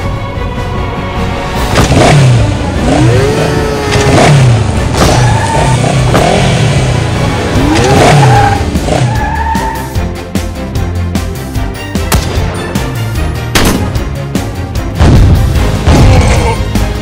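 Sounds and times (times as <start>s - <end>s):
background music: 0.0s - 17.0s
engine revving sound effect: 1.7s - 9.8s.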